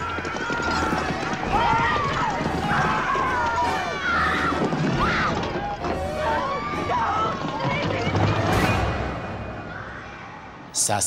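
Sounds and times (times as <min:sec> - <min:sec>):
women screaming in terror: 0:00.0 - 0:08.2
running footsteps: 0:00.0 - 0:08.8.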